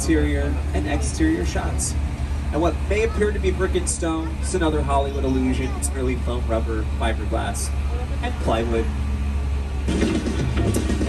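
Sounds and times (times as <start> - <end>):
tram rumbling: 0.0 - 11.0.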